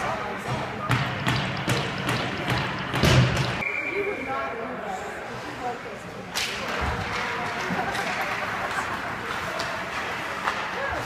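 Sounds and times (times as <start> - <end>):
faint rink chatter: 0.0 - 3.0, 3.6 - 11.0.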